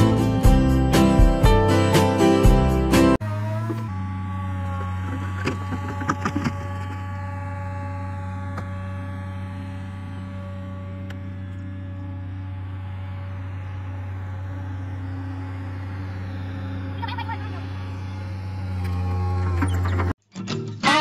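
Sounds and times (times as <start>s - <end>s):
excavator diesel engine running: 0.0s - 20.2s.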